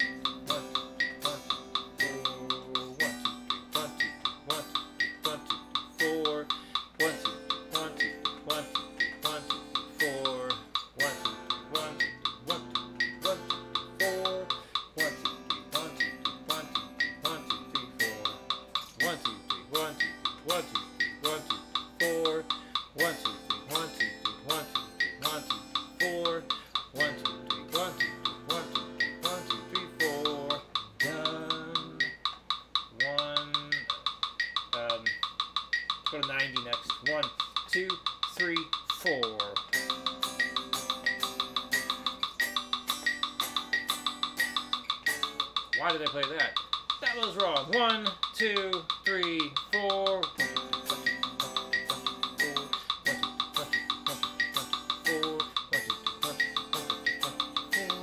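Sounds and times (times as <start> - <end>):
electric guitar strumming chords: 0.0 - 32.4, 38.9 - 58.0
metronome clicking: 0.0 - 58.0.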